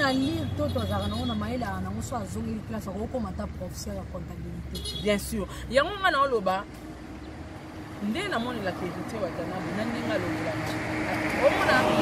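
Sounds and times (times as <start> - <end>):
woman's voice: 0.0 - 6.7, 8.0 - 12.0
street traffic noise: 0.0 - 12.0.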